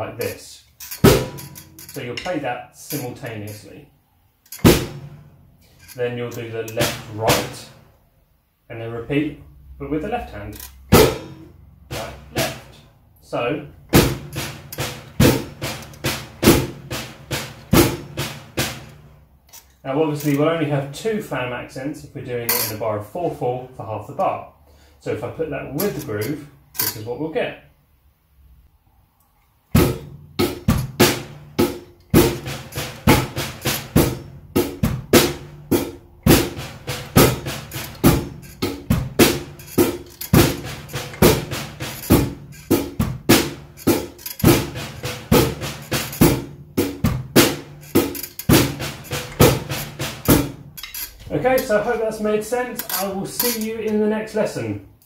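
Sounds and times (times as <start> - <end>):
drum kit flams: 1.0 - 2.3, 4.6 - 5.4, 6.7 - 7.8, 10.9 - 12.8, 13.8 - 19.2, 29.7 - 52.2.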